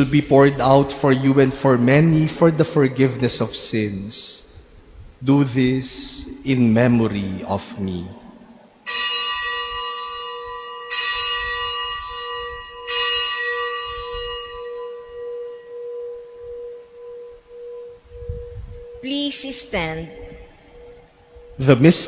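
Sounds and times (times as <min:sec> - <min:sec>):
steady hum: 0:00.0 - 0:08.9
bell ringing: 0:08.9 - 0:22.0.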